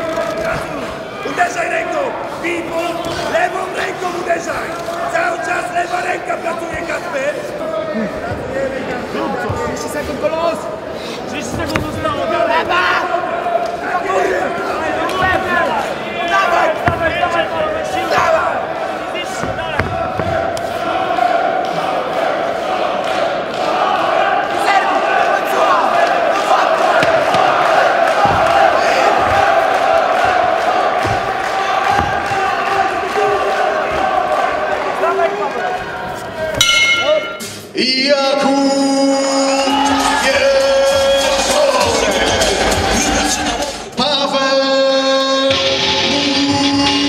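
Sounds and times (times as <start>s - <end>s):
crowd shouting and cheering: 0.0s - 47.0s
thuds of blows: 27.0s - 33.0s
music: 39.4s - 44.0s, 45.0s - 47.0s.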